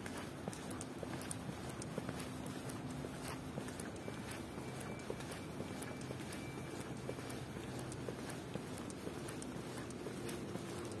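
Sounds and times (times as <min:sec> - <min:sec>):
city noise: 0:00.0 - 0:11.0
heel clicks on pavement: 0:00.0 - 0:11.0.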